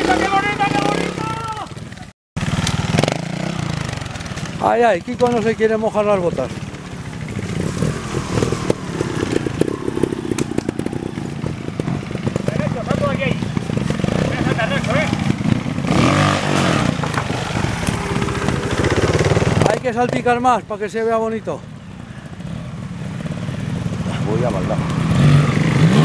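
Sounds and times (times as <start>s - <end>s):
motorcycle engine with throttle blips: 0.0s - 20.6s, 21.2s - 26.0s.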